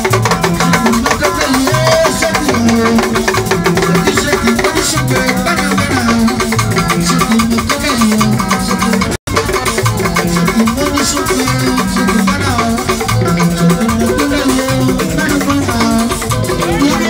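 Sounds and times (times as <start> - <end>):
bass line: 0.0 - 17.0
drums: 0.0 - 17.0
pitched instruments: 0.0 - 17.0.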